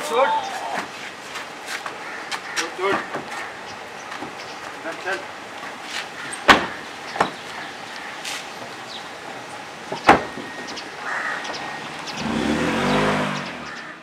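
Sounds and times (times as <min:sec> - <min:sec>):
men shouting and grunting: 0:00.0 - 0:01.0.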